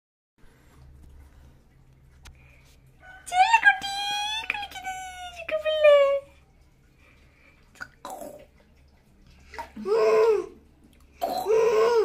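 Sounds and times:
bathwater splashing in plastic tub: 0.4 - 12.0.

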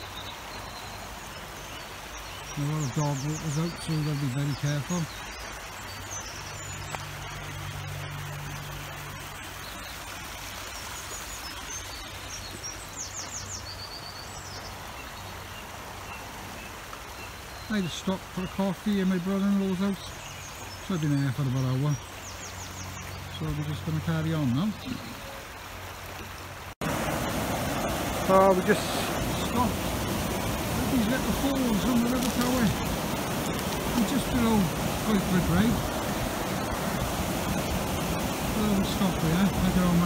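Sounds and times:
river water running: 0.0 - 40.0
songbirds singing: 0.0 - 40.0.

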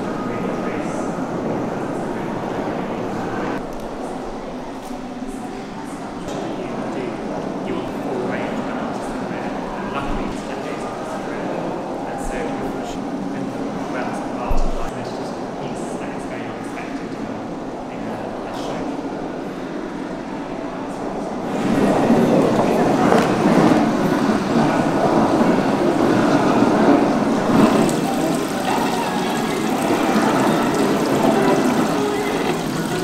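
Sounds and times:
water splashing into metal tub: 27.6 - 33.0.

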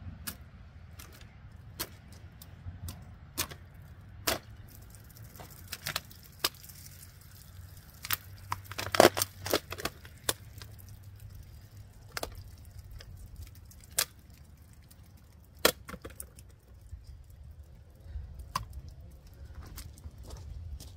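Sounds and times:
plastic bottle crackling and popping: 0.3 - 20.2
water trickling: 4.5 - 19.5.

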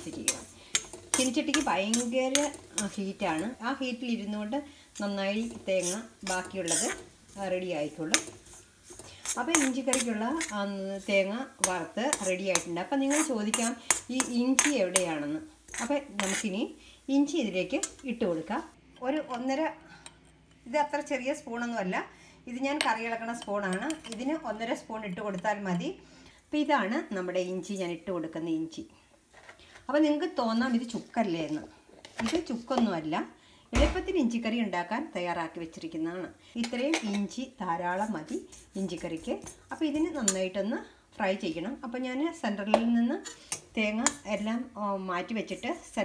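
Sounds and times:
woman talking: 0.0 - 0.4, 1.2 - 8.3, 9.3 - 19.8, 20.7 - 26.0, 26.6 - 28.9, 29.9 - 46.0
metal spatula scraping a pan: 0.0 - 18.6, 30.6 - 32.6, 36.6 - 40.5, 43.2 - 44.4.

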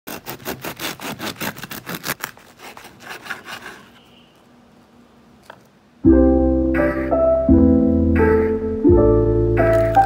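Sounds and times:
bread knife sawing through crust: 0.1 - 4.0.

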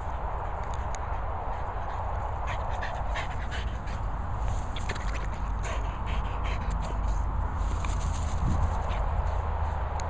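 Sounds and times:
dog panting: 0.1 - 7.6.

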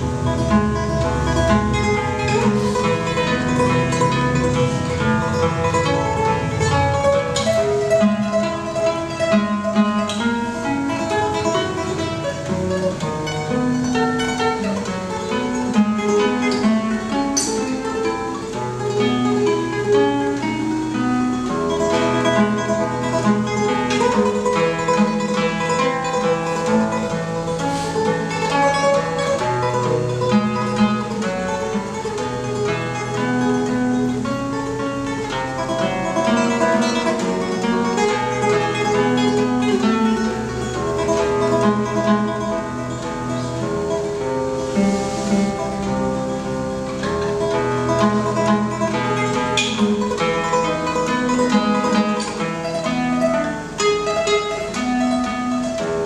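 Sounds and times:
classical guitar solo: 0.0 - 56.0.

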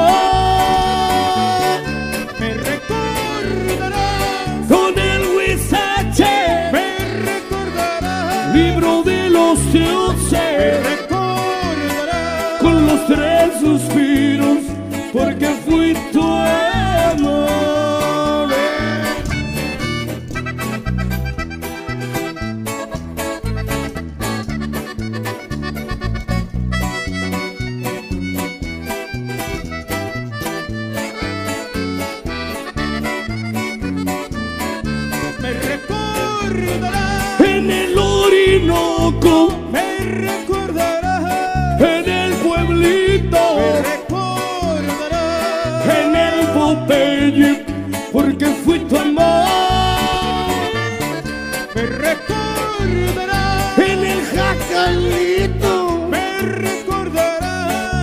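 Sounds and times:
accordion melody: 0.0 - 58.0
bass and guitar rhythm: 0.0 - 58.0.

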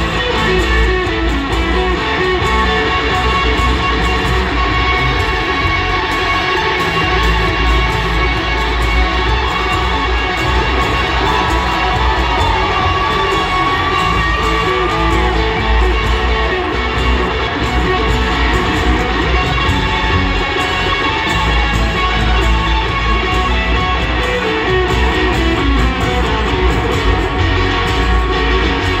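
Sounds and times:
crowd noise: 0.0 - 29.0.

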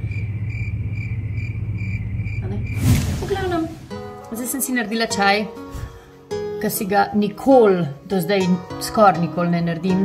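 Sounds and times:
crickets chirping: 0.0 - 3.9.

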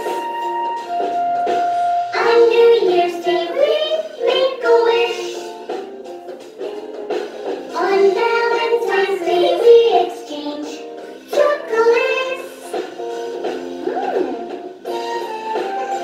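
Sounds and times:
instrumental backing track: 0.0 - 16.0
person singing children's song: 2.1 - 5.8, 7.7 - 16.0.

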